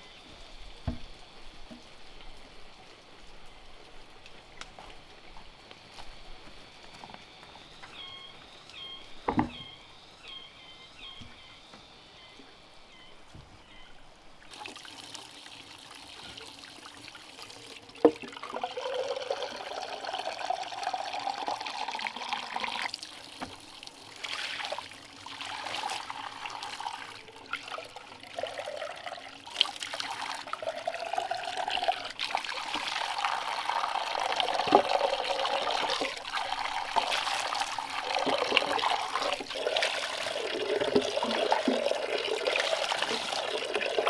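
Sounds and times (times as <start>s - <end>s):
water splashing into wooden trough: 14.5s - 28.8s, 29.5s - 44.0s.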